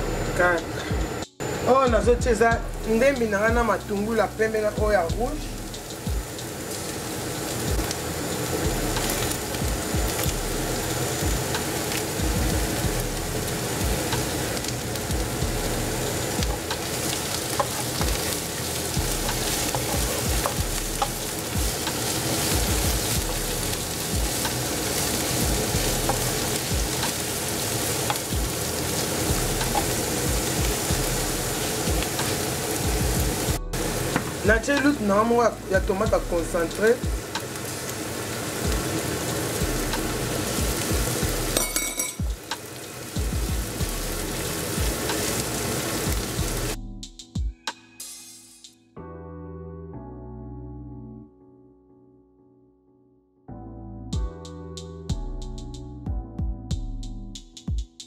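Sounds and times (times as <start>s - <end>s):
onions sizzling in hot oil: 2.7s - 46.8s.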